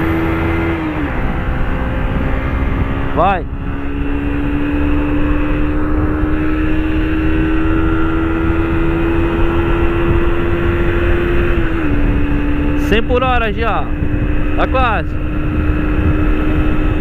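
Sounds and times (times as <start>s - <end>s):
motorcycle engine at full throttle: 0.0s - 17.0s
wind rush on microphone: 0.0s - 17.0s.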